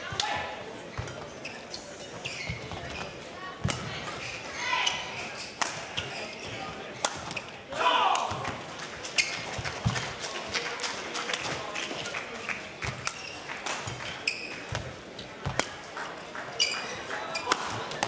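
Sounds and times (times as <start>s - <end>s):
shoes squeaking on court floor: 0.3s - 7.7s, 9.0s - 10.1s, 12.8s - 18.0s
rackets striking shuttlecock: 15.4s - 15.8s, 17.4s - 18.0s.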